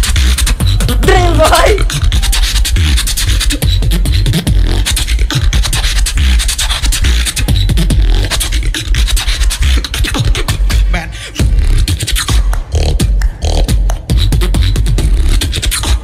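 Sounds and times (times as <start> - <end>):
heavy steady bass: 0.0 - 6.4, 10.2 - 15.2
beatboxing through microphone: 0.0 - 16.0.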